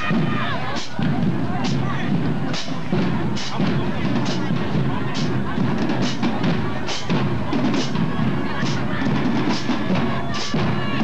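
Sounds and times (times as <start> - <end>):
crowd voices: 0.0 - 11.0
snare and cymbal hits: 0.0 - 11.0.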